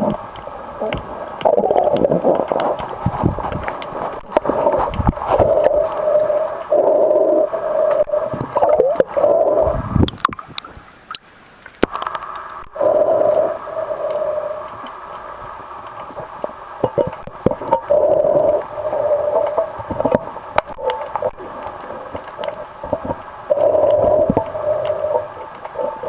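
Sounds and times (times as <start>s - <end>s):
underwater regulator breathing bubbles: 0.8s - 10.4s, 11.9s - 26.0s.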